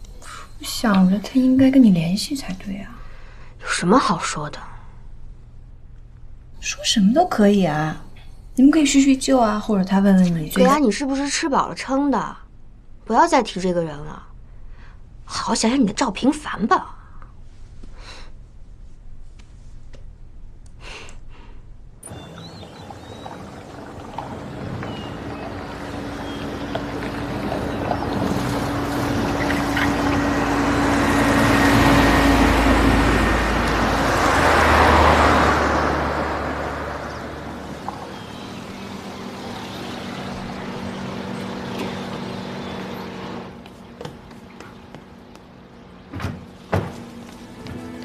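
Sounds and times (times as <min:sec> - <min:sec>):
car driving past on paving: 0:22.0 - 0:48.0.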